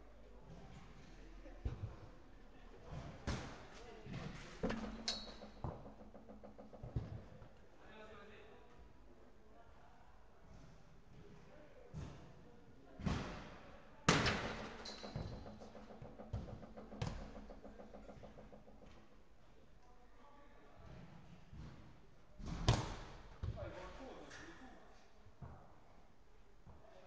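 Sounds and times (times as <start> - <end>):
football thud: 14.1 - 18.4.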